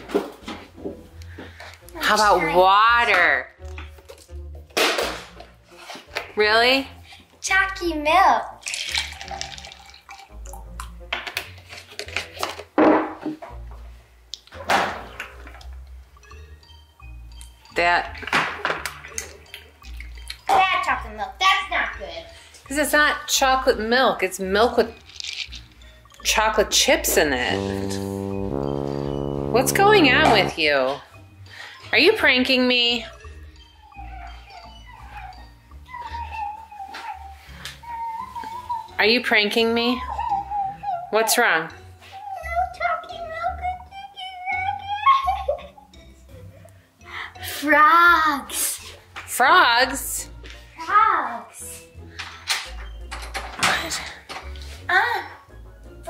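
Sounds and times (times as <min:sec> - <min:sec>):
background music with bass line: 0:26.8 - 0:30.8.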